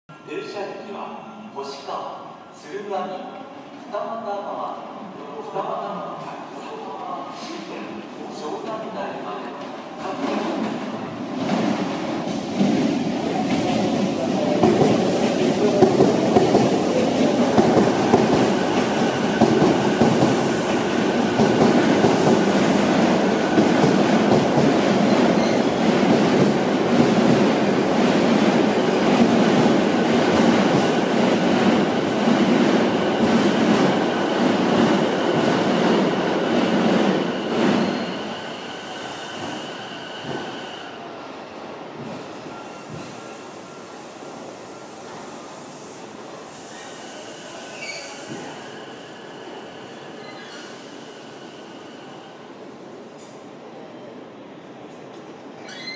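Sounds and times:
train wheels rumbling on rail: 0:09.6 - 0:40.6
high-pitched brake squeal: 0:37.4 - 0:40.8, 0:46.6 - 0:52.3, 0:55.6 - 0:55.9.

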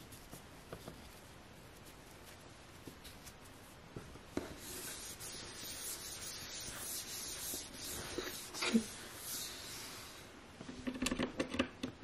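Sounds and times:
cloth rubbing on desk: 0:00.0 - 0:10.2.

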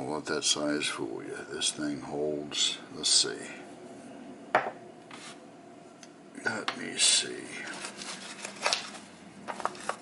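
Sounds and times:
lighter set down on wooden table: 0:04.6 - 0:04.8.

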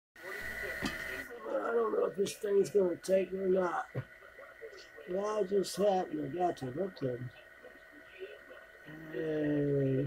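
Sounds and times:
man speaking: 0:01.2 - 0:07.4.

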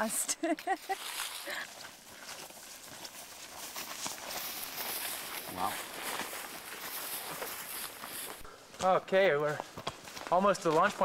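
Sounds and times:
footsteps through long grass: 0:00.6 - 0:11.0.

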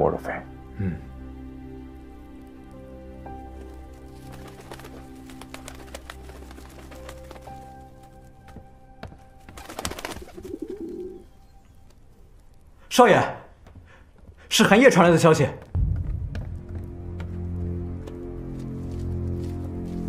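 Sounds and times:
soft background music: 0:00.0 - 0:13.3, 0:14.6 - 0:20.0
pigeon wings flapping: 0:03.6 - 0:08.6, 0:09.4 - 0:11.1
pigeon cooing: 0:10.2 - 0:11.3.

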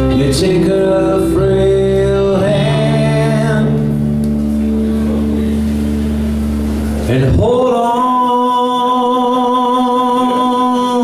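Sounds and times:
acoustic guitar: 0:00.0 - 0:11.0
bass guitar: 0:00.0 - 0:11.0
electric guitar: 0:00.0 - 0:11.0.

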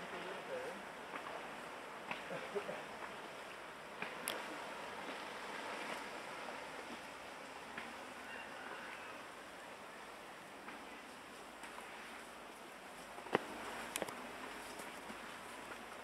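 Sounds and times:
soft outdoor hiss: 0:00.0 - 0:16.0
faint clicks: 0:04.0 - 0:04.5.

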